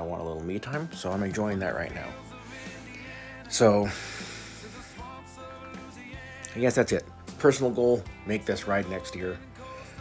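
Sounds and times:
soundtrack background music: 0.0s - 10.0s.

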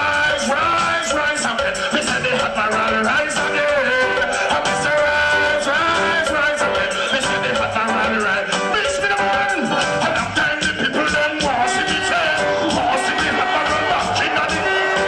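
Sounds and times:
reggae backing rhythm: 0.0s - 15.0s.

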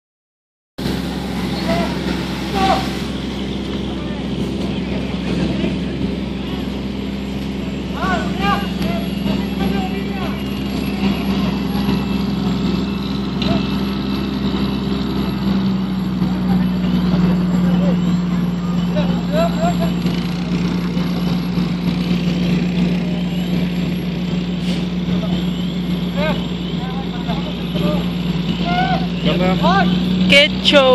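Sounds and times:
fire truck engine running: 0.8s - 30.9s
voices calling out: 0.8s - 30.9s.

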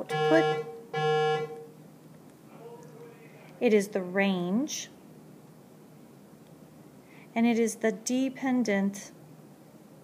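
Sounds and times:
person's voice holding flat tone: 0.0s - 0.7s
faint hum: 0.0s - 10.0s.

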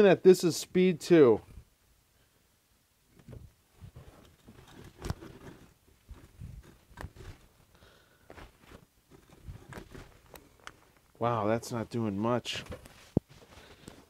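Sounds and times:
drill bit scraping wood: 4.3s - 7.5s.

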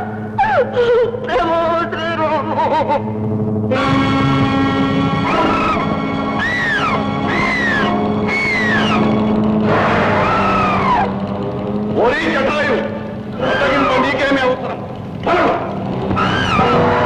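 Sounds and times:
film score of held notes: 0.0s - 17.0s
bird of prey screeching: 5.3s - 9.2s, 10.0s - 11.1s, 13.4s - 14.1s, 16.2s - 16.8s.

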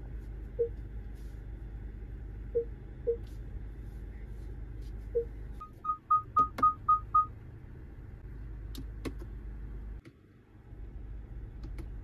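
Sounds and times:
low cabin hum: 0.0s - 12.0s
parking sensor beeps: 0.6s - 0.8s, 2.5s - 3.2s, 5.1s - 7.4s.

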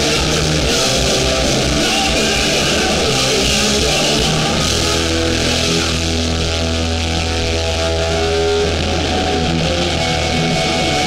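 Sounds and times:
deep steady bass note: 0.0s - 11.0s
distorted electric guitars: 0.0s - 11.0s
punk band playing loud: 0.0s - 11.0s.

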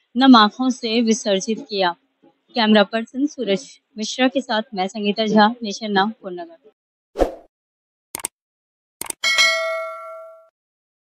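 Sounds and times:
quick clicks: 8.2s - 8.4s, 9.0s - 9.2s
notification bell ding: 9.2s - 10.5s.

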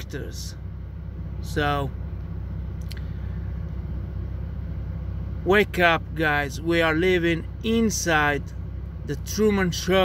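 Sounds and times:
faint hum: 0.0s - 10.0s
low background rumble: 0.0s - 10.0s.

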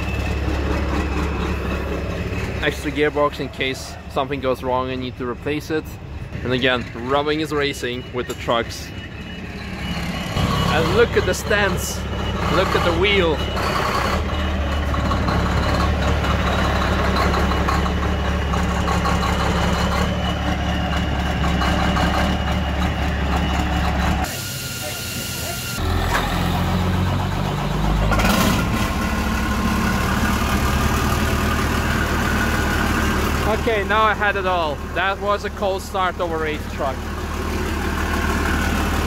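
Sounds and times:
diesel engine cranking and idling: 0.0s - 39.0s
diesel engine running: 0.0s - 39.0s.

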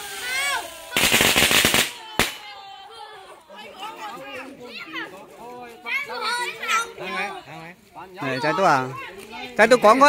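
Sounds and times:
firecrackers going off: 0.0s - 2.8s.

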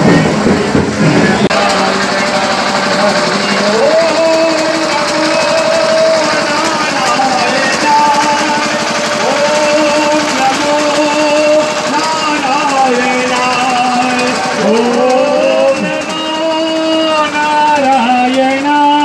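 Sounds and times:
crowd din: 0.0s - 19.0s
fast rattling beat: 0.0s - 19.0s.

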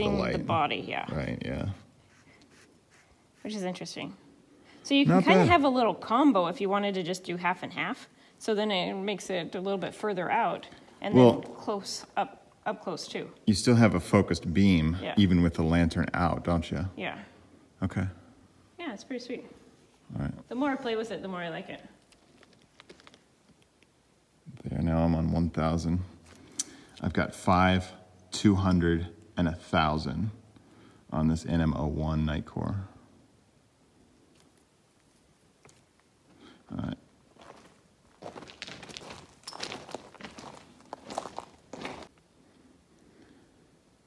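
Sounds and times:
footsteps crunching on gravel: 37.3s - 42.2s.

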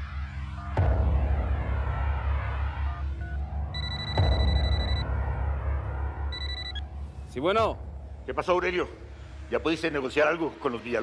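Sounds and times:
mobile phone ringing: 3.8s - 5.0s, 6.4s - 6.8s.

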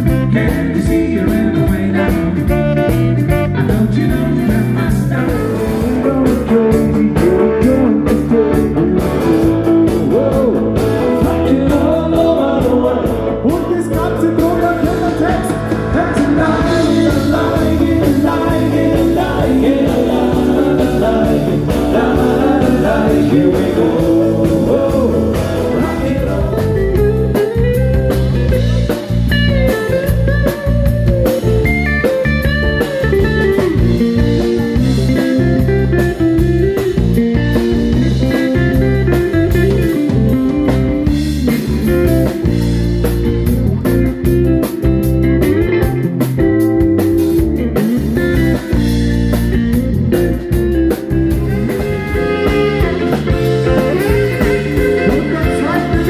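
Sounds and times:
person singing: 0.0s - 27.6s, 51.3s - 56.0s
drum kit: 0.0s - 56.0s
guitar: 0.0s - 56.0s.

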